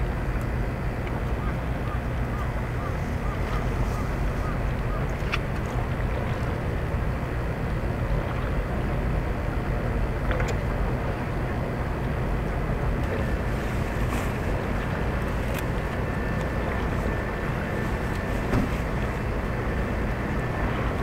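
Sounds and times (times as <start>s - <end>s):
faint steady whine: 0.0s - 21.0s
ship engines rumbling: 0.0s - 21.0s.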